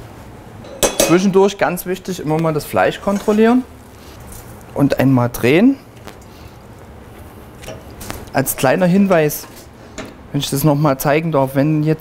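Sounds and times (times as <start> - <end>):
kitchen background: 0.6 - 5.0.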